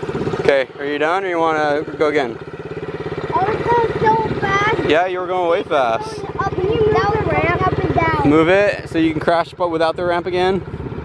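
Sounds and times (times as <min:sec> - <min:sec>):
small motorbike engine idling: 0:00.0 - 0:11.0
child talking: 0:03.3 - 0:04.9, 0:05.8 - 0:08.4.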